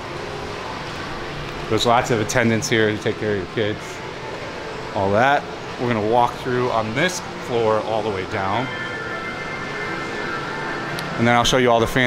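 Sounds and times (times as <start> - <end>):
background music: 0.0 - 12.0
steady hum: 0.0 - 12.0.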